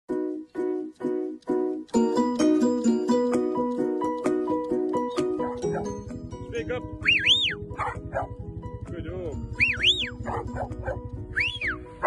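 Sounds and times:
dog barking: 0:05.4 - 0:06.0, 0:07.7 - 0:08.4, 0:10.2 - 0:11.1
high whistle rising and falling: 0:07.0 - 0:07.6, 0:09.6 - 0:10.2, 0:11.3 - 0:11.9.

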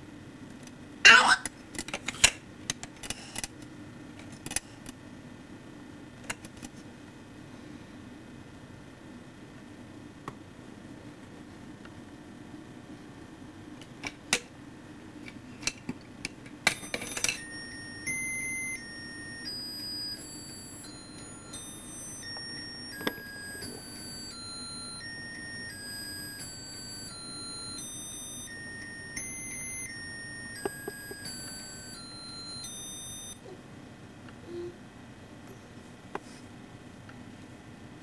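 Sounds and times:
toy electronic beeping melody: 0:16.8 - 0:33.4.

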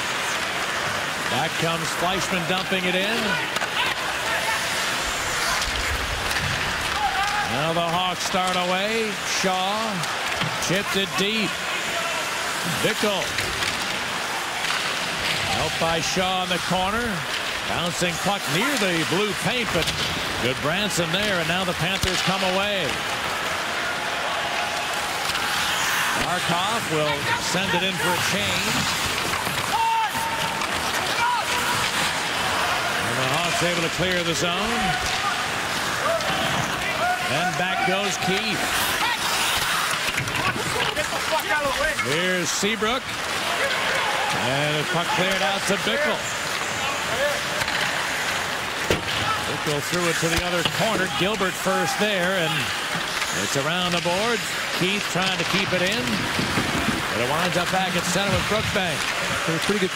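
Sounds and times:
hockey sticks and puck clacks: 0:00.0 - 0:59.9
skates scraping ice: 0:00.0 - 0:59.9.

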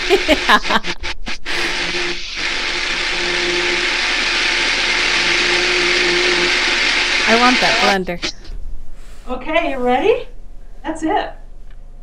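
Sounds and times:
personal blender running: 0:00.0 - 0:08.4.

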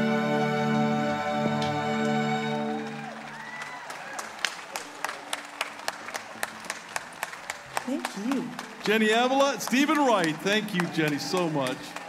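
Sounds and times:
audience applause: 0:01.2 - 0:12.0
sharp evenly spaced handclaps: 0:02.8 - 0:12.0.

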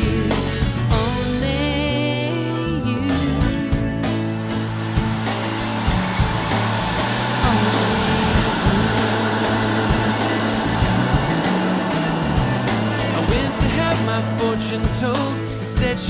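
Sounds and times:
instrumental pop music: 0:00.0 - 0:16.0.

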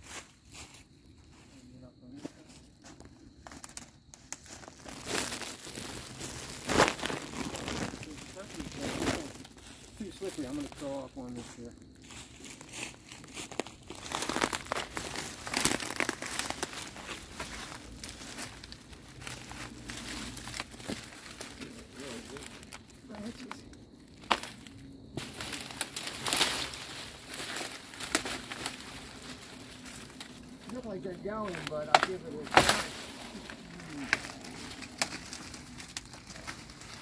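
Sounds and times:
dry leaves and twigs crackling: 0:00.0 - 0:37.0.

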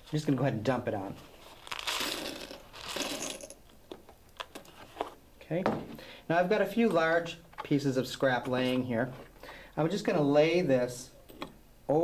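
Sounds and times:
glass granules pouring: 0:01.7 - 0:03.6.

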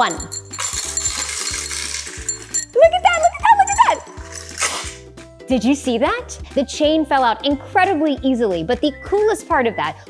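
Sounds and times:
metal bead chain rattling: 0:00.0 - 0:05.0
background music with steady beat: 0:00.0 - 0:10.0.

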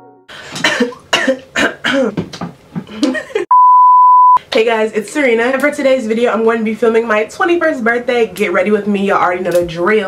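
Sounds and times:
steady test tone beep: 0:03.5 - 0:04.4.

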